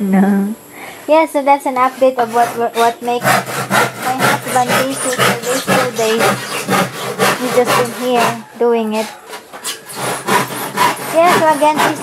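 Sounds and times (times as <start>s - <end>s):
handsaw cutting wood: 1.8s - 12.0s.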